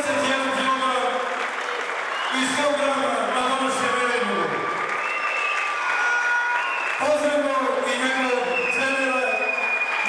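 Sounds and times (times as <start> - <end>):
applause: 0.0 - 10.0.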